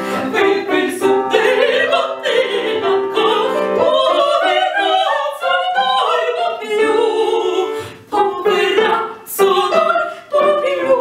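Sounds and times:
grand piano accompaniment: 0.0s - 11.0s
women singing operatic duet: 0.1s - 11.0s.

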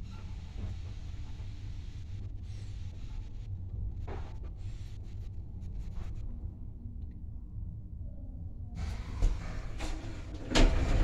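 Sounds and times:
lift car rumble: 8.8s - 11.0s.

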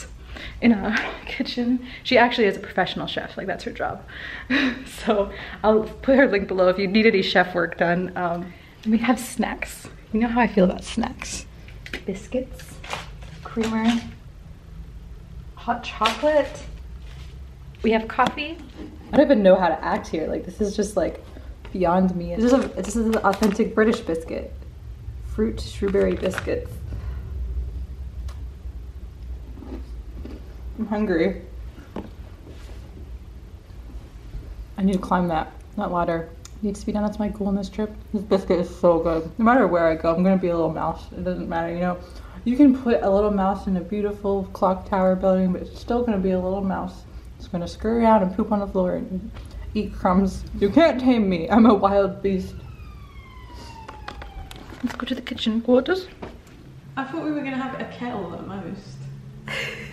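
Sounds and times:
steady low rumble: 0.0s - 59.9s
distant emergency siren wailing: 50.7s - 59.5s.

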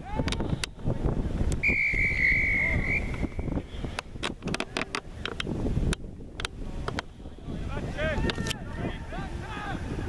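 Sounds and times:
wind noise on microphone: 0.0s - 10.0s
referee's whistle blast: 1.6s - 3.6s.

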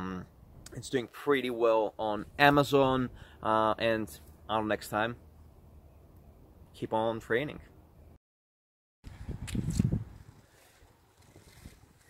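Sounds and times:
wind rumble on microphone: 9.0s - 12.0s.

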